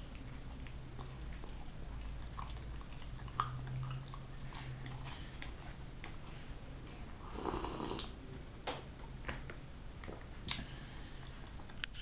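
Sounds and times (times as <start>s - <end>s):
man chewing pastry: 0.0s - 6.6s
wet mouth clicks: 10.4s - 10.7s.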